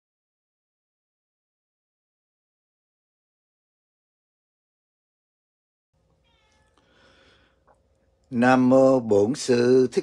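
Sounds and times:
faint high animal call: 0:06.1 - 0:07.2.

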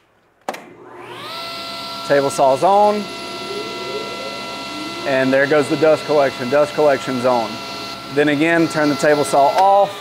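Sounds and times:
dust collector motor whine: 0:00.8 - 0:08.1
table saw running: 0:01.0 - 0:08.2.

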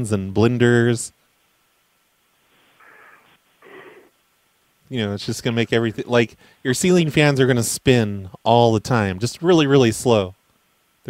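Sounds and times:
faint breaths over telephone: 0:06.4 - 0:06.6.

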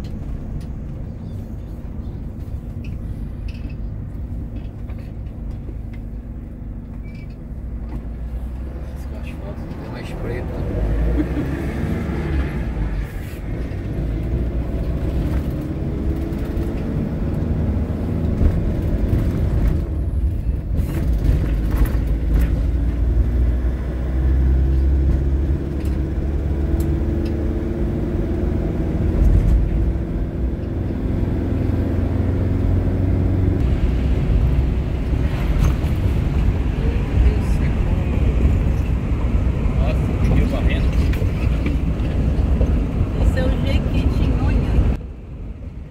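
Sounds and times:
motorhome engine accelerating: 0:00.0 - 0:45.9
road noise inside cab: 0:00.0 - 0:45.9.

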